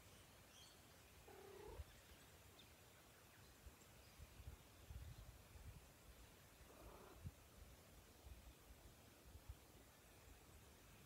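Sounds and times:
faint animal call: 1.2s - 1.9s, 6.6s - 7.3s.

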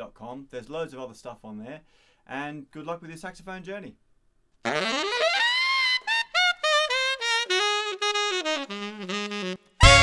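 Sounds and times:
saxophone rising glide: 4.7s - 10.0s.

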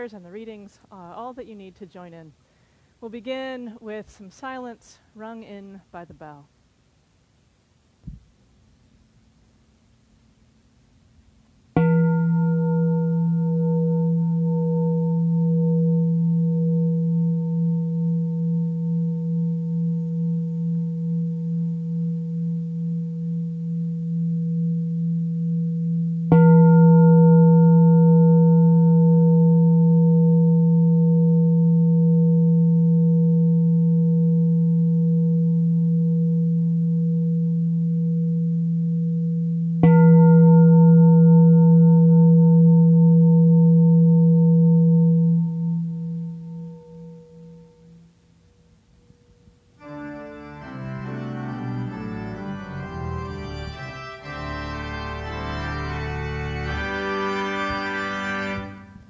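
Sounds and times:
bell struck with long ringing: 11.8s - 48.1s.

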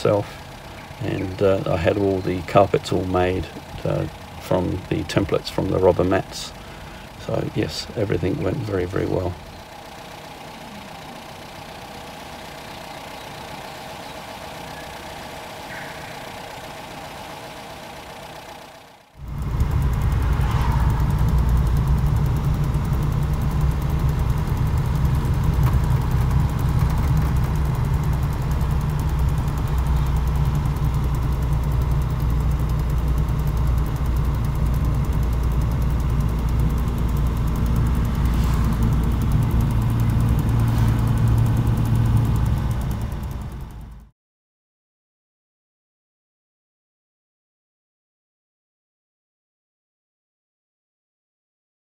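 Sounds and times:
car engine idling: 0.0s - 44.1s
engine and road rumble in cabin: 0.0s - 44.1s.

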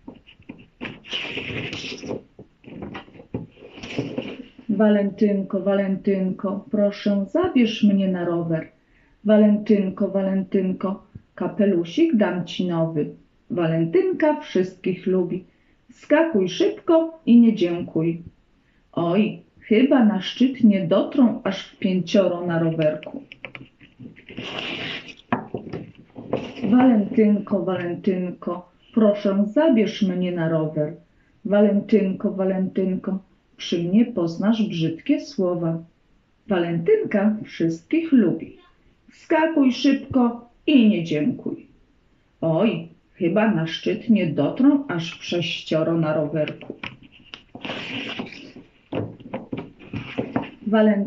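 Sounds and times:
card scraping against wood: 0.0s - 4.5s, 23.4s - 26.9s, 46.6s - 48.7s
card scraping on wooden frame: 23.6s - 25.3s.

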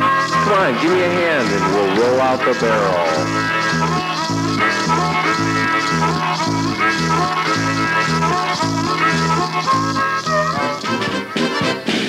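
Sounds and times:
upbeat polka band music: 0.0s - 12.0s.

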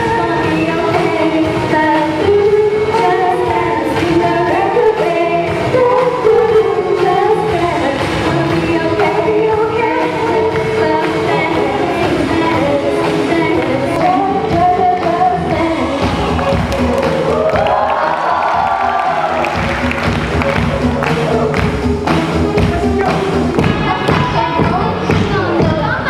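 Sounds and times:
students singing a pop song: 0.0s - 19.7s, 20.3s - 26.0s
backing music with steady beat: 0.0s - 26.0s.

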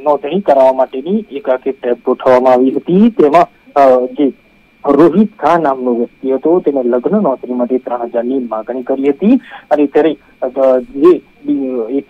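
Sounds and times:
faint steady high tone: 0.0s - 12.0s
narrator talking: 0.0s - 12.0s.

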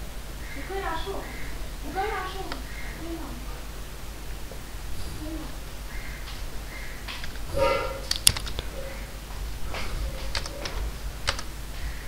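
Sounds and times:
computer keyboard keystrokes: 8.1s - 8.7s, 10.2s - 11.5s.

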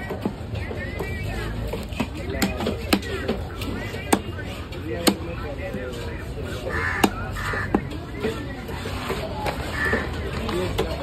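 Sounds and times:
knife chopping fish on wood: 2.0s - 3.4s, 5.0s - 5.3s, 6.8s - 7.9s
crow cawing: 6.7s - 7.8s, 9.7s - 10.1s.

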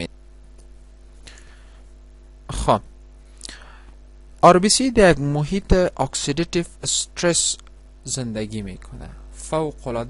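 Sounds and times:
faint steady hum: 0.0s - 10.0s
short breath: 1.2s - 1.9s, 3.4s - 4.0s.

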